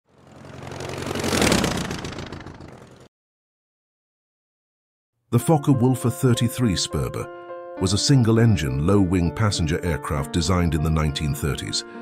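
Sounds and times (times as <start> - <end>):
aircraft engine drone passing: 0.0 - 3.1.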